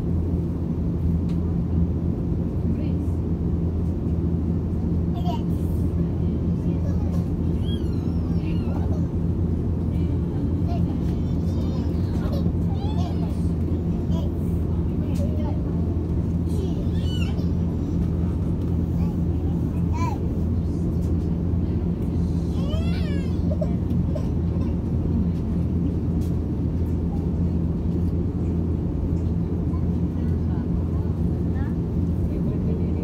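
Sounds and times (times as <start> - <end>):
aircraft cabin hum: 0.0 - 33.0
faint passenger voices: 0.0 - 33.0
child's voice: 5.1 - 5.9, 6.6 - 9.2, 10.4 - 15.7, 16.4 - 20.4, 22.4 - 25.0.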